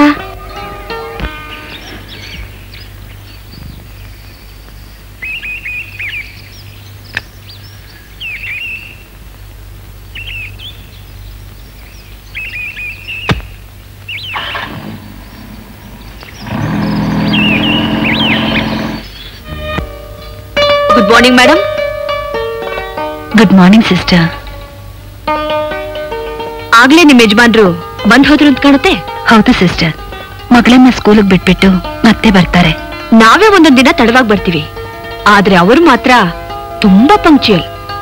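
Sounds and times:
birds chirping: 0.0s - 38.0s
steady low hum: 9.0s - 22.4s.

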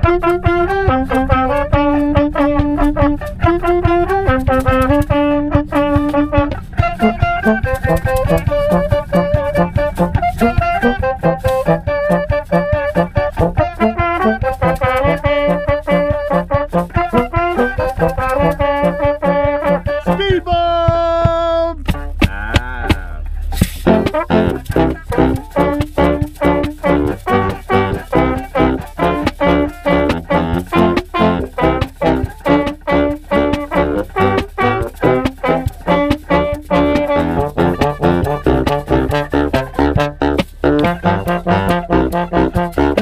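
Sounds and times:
brass band playing jazz: 0.0s - 20.6s, 21.8s - 22.3s, 23.4s - 43.0s.

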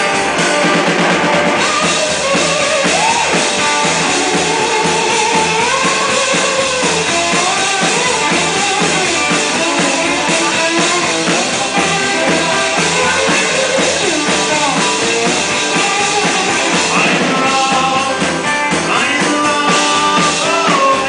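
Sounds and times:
drum kit beat: 0.0s - 21.0s
electric slide guitar: 0.0s - 21.0s.

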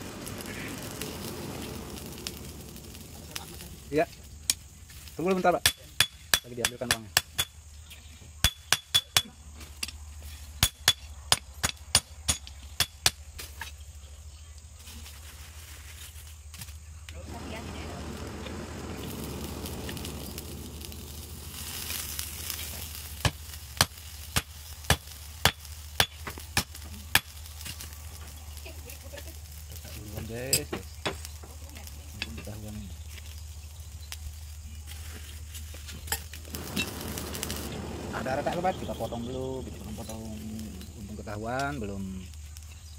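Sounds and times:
forge hum and hiss: 0.0s - 7.5s, 16.6s - 42.9s
hammer striking hot steel: 5.6s - 7.6s, 8.4s - 9.2s, 10.6s - 13.2s, 18.1s - 27.8s.

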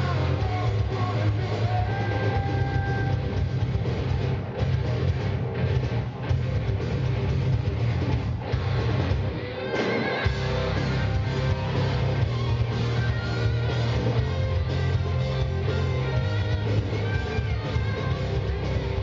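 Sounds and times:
hard rock band playing live: 0.0s - 19.0s.

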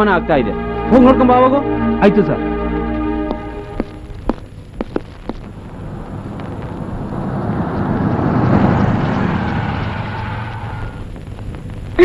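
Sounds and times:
vehicle driving by: 5.8s - 11.0s.

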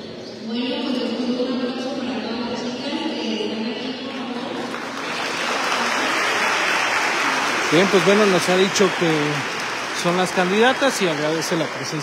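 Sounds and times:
audience applauding: 4.4s - 12.0s.

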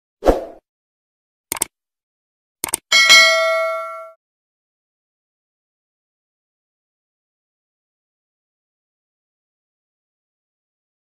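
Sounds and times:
quick double clicks: 1.5s - 1.7s, 2.6s - 2.9s
bright bell ding: 2.9s - 4.2s.

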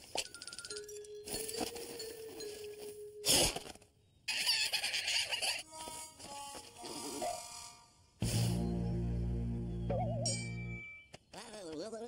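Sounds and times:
burst of hiss: 6.9s - 8.7s.

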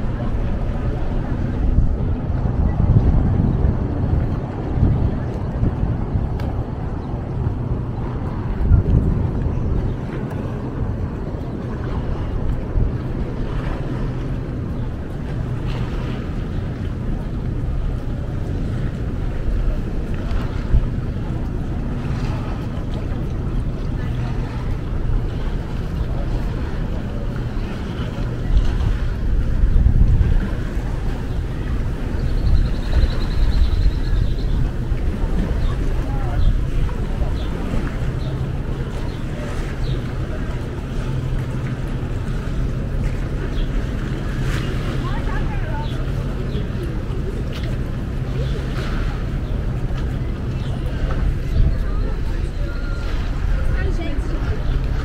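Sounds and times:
faint voices of passersby: 0.0s - 55.0s
wind buffeting microphone: 0.0s - 55.0s.

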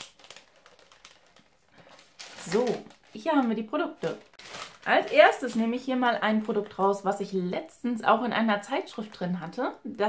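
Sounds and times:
cardboard box and paper rustling: 0.2s - 5.7s.

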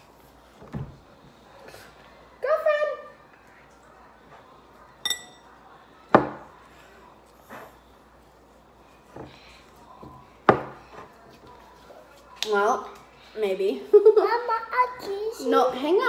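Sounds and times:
ringing glass clink: 5.0s - 5.5s.

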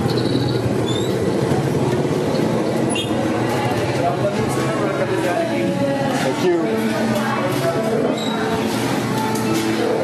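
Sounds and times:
traffic rumble: 0.0s - 5.9s.

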